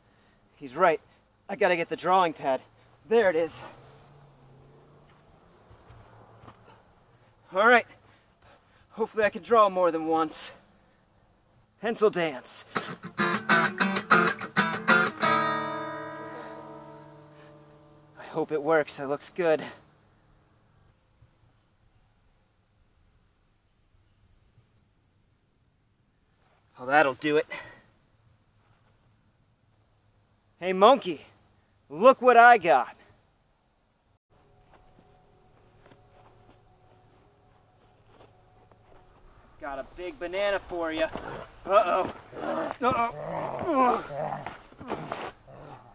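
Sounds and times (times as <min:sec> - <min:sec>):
soft footsteps on grass: 0:05.0 - 0:07.3, 0:26.3 - 0:26.8, 0:34.4 - 0:45.8
guitar strumming: 0:12.8 - 0:18.1.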